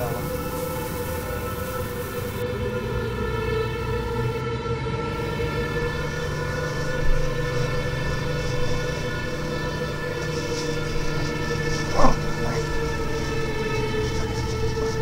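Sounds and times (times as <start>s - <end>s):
droning chord of held tones: 0.0s - 15.0s.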